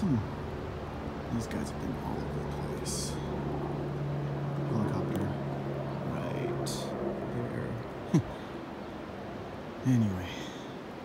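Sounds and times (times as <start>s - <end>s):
distant helicopter drone: 0.0s - 11.0s.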